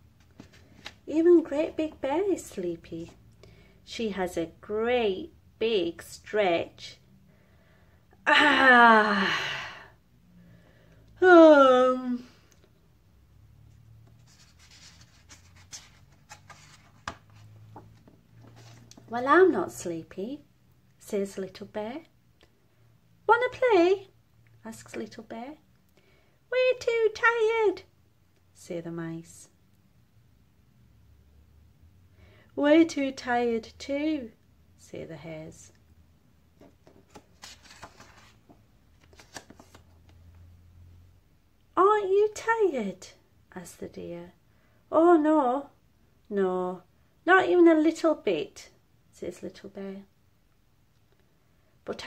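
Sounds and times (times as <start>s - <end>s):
paper pages rustling: 0.2s - 1.1s, 14.0s - 19.1s, 36.6s - 40.2s.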